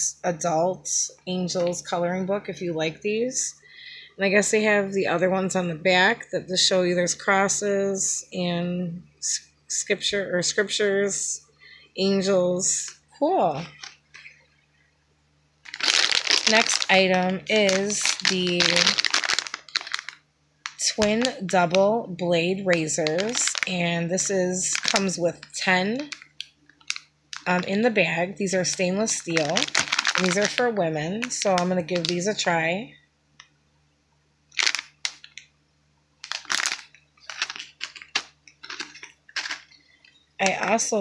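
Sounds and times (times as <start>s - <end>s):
plastic bag crinkling: 12.7s - 14.4s, 15.6s - 27.8s, 28.5s - 32.5s, 34.5s - 35.5s, 36.2s - 40.9s.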